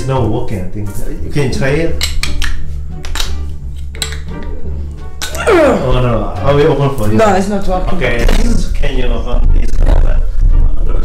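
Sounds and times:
background music: 0.0 - 11.0
lighter clicking on bottle cap: 2.0 - 4.5.

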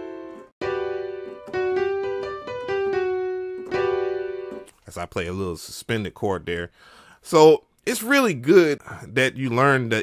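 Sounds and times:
electric piano chords: 0.0 - 4.7.

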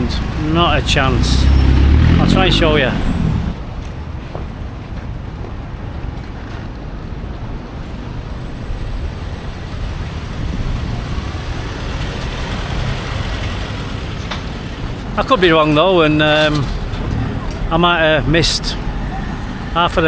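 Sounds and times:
background traffic: 0.0 - 20.0
wind buffeting microphone: 3.0 - 15.2.

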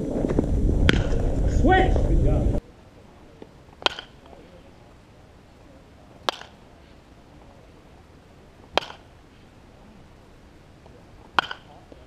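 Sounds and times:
baseball bat hitting ball: 0.9 - 1.2, 3.4 - 4.4, 6.2 - 6.7, 8.7 - 9.1, 11.3 - 12.0.

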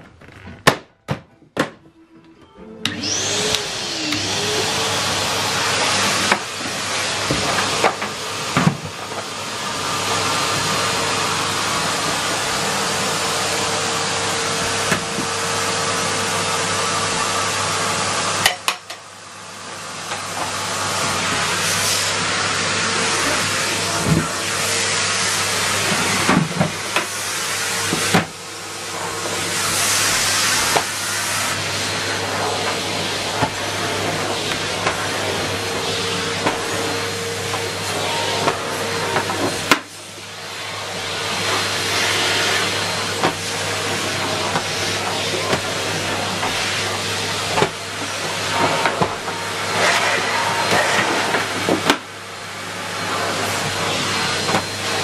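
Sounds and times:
vacuum cleaner running: 2.0 - 55.0.

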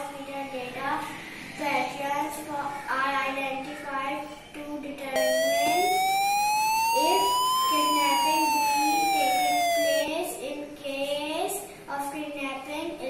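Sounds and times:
buzzy electronic siren tone: 5.2 - 10.1.

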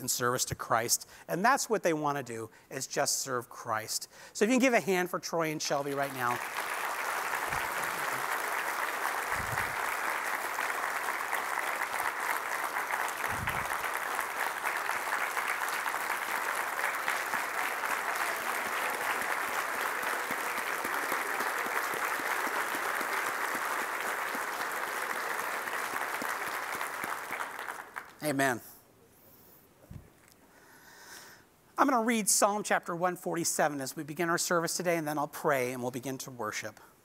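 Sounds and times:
crowd clapping: 5.7 - 28.4.

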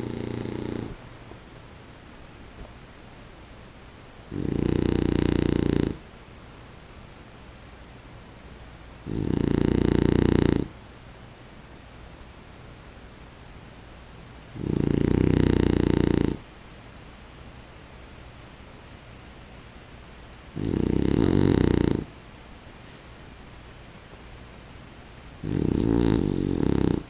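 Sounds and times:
dog snoring: 0.0 - 1.0, 4.3 - 6.0, 9.0 - 10.8, 14.5 - 16.4, 20.5 - 22.1, 25.4 - 27.0.

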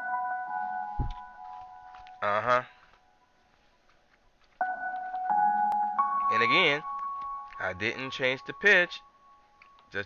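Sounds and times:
looped hip-hop beat melody: 0.0 - 3.6, 4.3 - 10.0.

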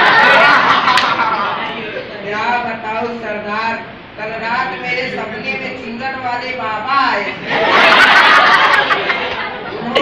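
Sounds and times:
audience chattering: 4.7 - 10.0.

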